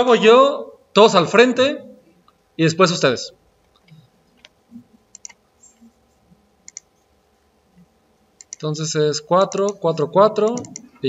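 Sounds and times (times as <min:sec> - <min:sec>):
computer mouse clicks: 0:03.6 - 0:05.9, 0:06.6 - 0:07.0, 0:07.8 - 0:08.7, 0:10.5 - 0:11.0.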